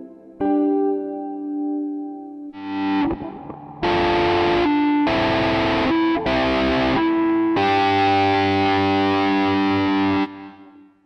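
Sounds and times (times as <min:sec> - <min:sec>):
distorted electric guitar chords: 0:02.5 - 0:11.0.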